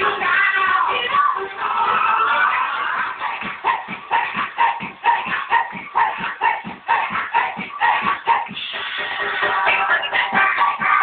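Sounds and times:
children's dance music: 0.0s - 11.0s
person singing: 0.0s - 11.0s.

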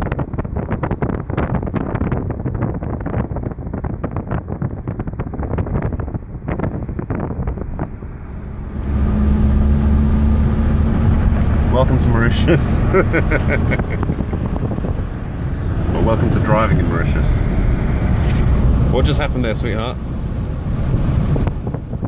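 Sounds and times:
car engine hum and road noise: 0.0s - 22.0s
wind buffeting microphone: 0.0s - 22.0s.

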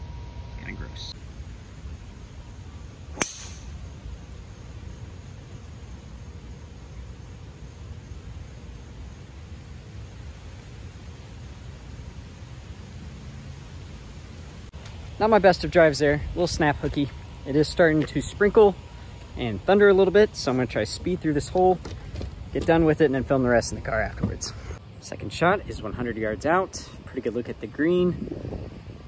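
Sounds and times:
golf club striking ball: 3.1s - 3.8s
wind on microphone: 28.0s - 29.0s.

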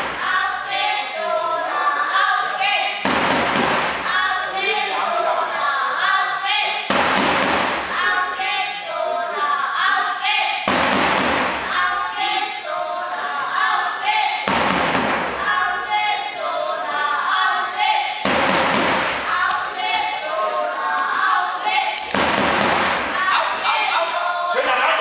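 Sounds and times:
loud crowd noise burst: 0.0s - 25.0s
spectators chanting and shouting: 0.0s - 25.0s
voices in large hall: 0.0s - 25.0s
thuds: 3.0s - 4.1s, 6.9s - 7.9s, 10.7s - 11.7s, 14.4s - 15.4s, 18.2s - 19.3s, 22.0s - 23.2s.

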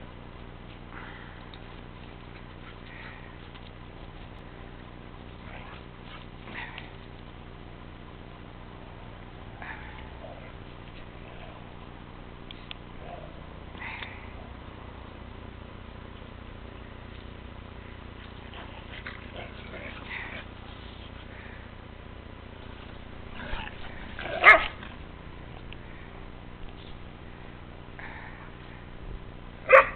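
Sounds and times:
dogs yipping: 23.6s - 24.9s, 29.7s - 29.9s
dog barking loudly: 24.2s - 24.8s, 29.6s - 29.9s.

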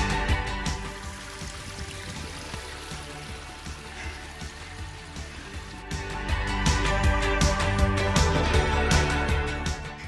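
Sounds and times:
background music: 0.0s - 10.0s
stream trickling over rocks: 0.7s - 6.0s.

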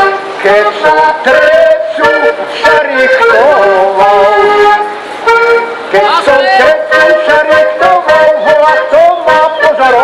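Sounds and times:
button accordion playing folk tune: 0.0s - 10.0s
person singing: 0.1s - 4.9s, 5.9s - 10.0s.

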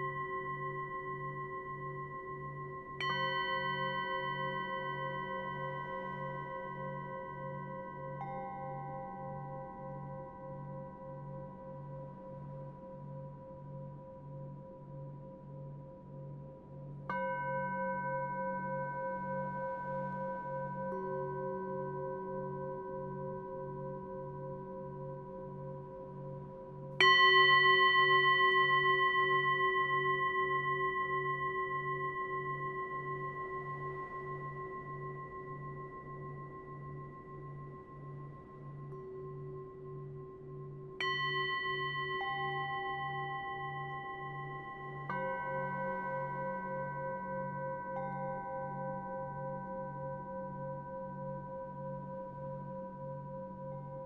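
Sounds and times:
singing bowl ringing: 0.0s - 11.7s, 17.1s - 53.0s.

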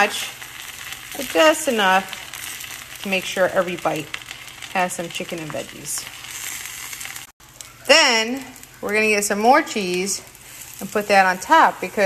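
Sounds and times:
tortilla sizzling in frying pan: 0.0s - 12.0s.

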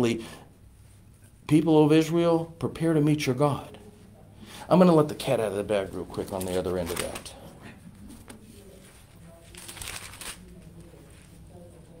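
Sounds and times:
thin pages turning: 5.9s - 7.4s, 8.3s - 10.9s.

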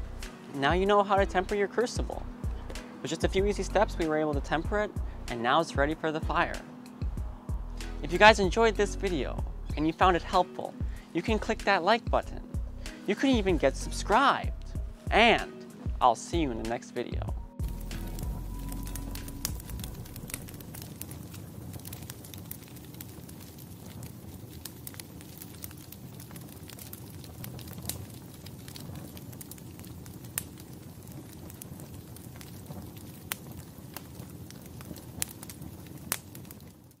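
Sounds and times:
charcoal fire roaring: 0.0s - 16.6s, 17.2s - 37.0s
fire crackling and popping: 0.0s - 37.0s.

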